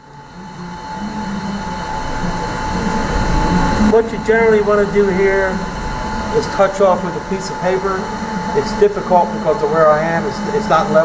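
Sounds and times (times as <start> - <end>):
surface grinder running: 0.0 - 11.0.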